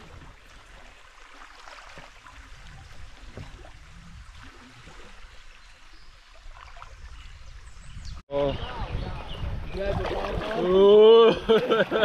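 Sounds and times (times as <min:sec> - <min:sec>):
small water splashes: 0:00.0 - 0:07.8, 0:09.5 - 0:11.3
river water rippling: 0:00.0 - 0:12.0.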